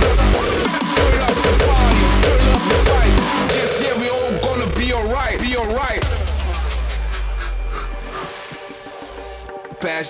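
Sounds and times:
hardcore electronic music: 0.0s - 10.0s.

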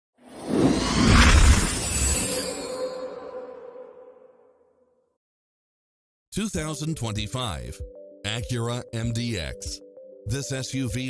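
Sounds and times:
whoosh: 0.2s - 4.6s
high shimmer: 0.6s - 4.5s.

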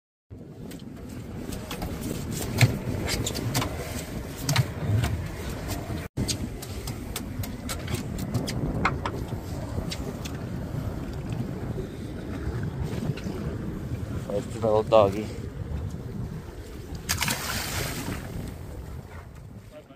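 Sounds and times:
wind buffeting microphone: 0.3s - 19.9s
wind and water rushing: 0.4s - 19.9s.

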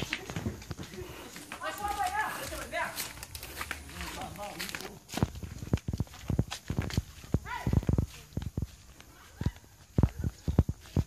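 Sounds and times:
footsteps on grass and earth: 0.0s - 11.0s.

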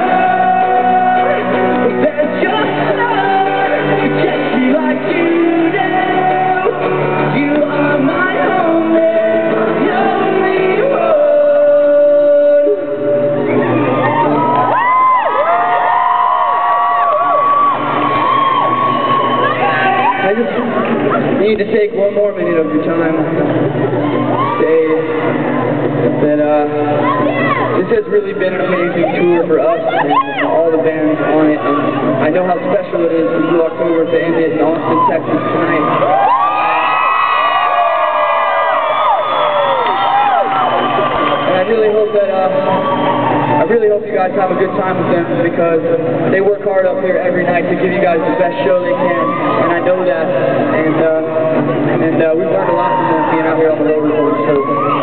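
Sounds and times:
concert audience cheering: 0.0s - 45.5s, 46.4s - 55.0s
audience cheering and whooping: 13.5s - 21.4s, 23.8s - 25.9s, 34.0s - 43.7s, 52.5s - 55.0s.

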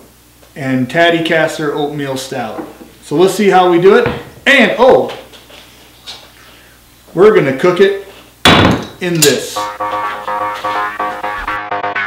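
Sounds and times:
person speaking: 9.0s - 9.8s.

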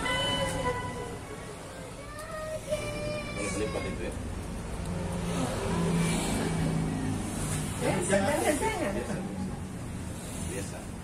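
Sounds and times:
vehicle driving past: 4.2s - 11.0s.

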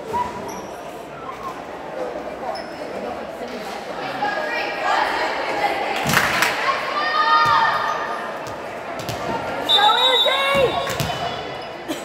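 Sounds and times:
high whistle: 9.7s - 10.8s.

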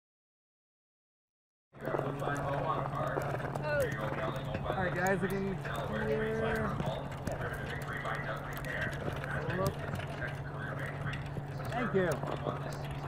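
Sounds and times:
distant people talking: 1.8s - 13.0s
steady low hum: 1.8s - 13.0s.

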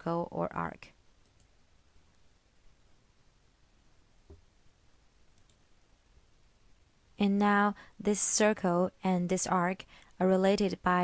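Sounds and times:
computer mouse click: 1.2s - 1.5s, 5.3s - 5.6s.

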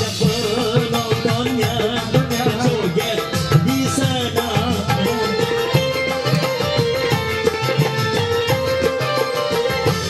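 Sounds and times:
hand drums: 0.0s - 10.0s
plucked strings: 0.0s - 10.0s.

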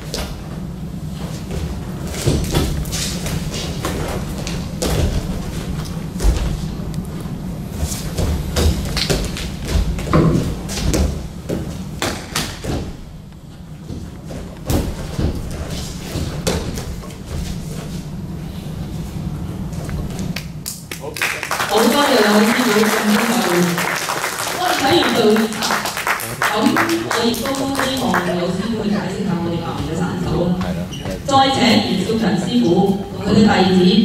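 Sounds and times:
feet stamping on a padded mat: 0.0s - 6.9s, 7.7s - 18.1s
steady low hum: 0.0s - 34.0s.

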